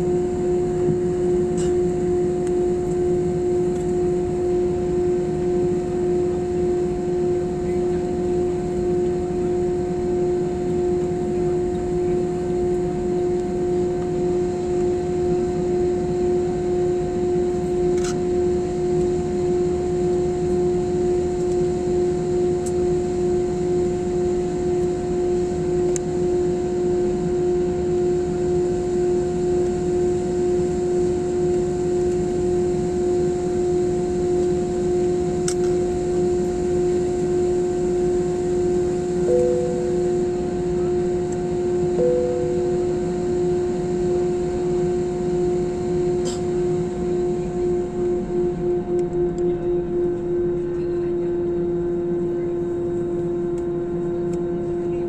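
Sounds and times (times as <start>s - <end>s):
jet engines idling drone: 0.0s - 55.0s
short tones: 39.3s - 40.8s, 41.9s - 43.6s.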